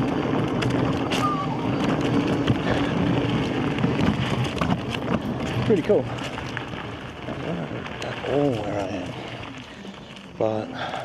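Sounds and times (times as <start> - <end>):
electric unicycle rushing: 0.0 - 11.0.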